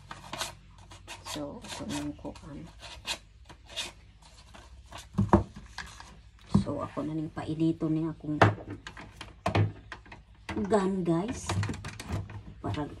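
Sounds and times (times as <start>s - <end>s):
paper rustling and scraping: 0.0s - 6.3s.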